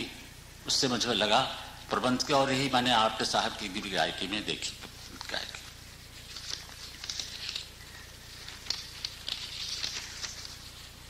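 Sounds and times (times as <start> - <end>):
low mains hum and hiss: 0.0 - 11.0.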